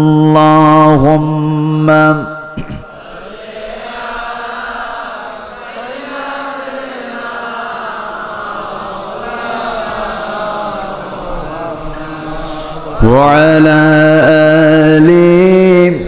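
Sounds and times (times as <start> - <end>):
men chanting in unison: 0.0 - 16.0.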